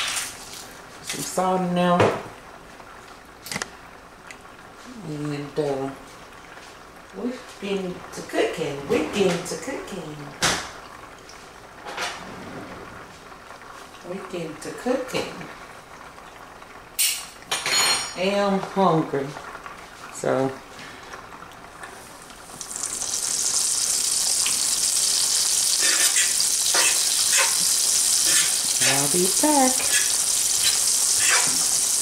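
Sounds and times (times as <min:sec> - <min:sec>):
kitchen clatter: 0:17.0 - 0:18.4, 0:25.7 - 0:31.8
faint steady hiss of skillet: 0:19.8 - 0:32.0.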